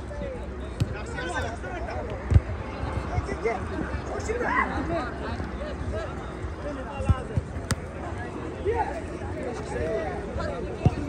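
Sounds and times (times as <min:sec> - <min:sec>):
spectators talking and calling out: 0:00.0 - 0:11.0
football kick thud: 0:10.8 - 0:11.0.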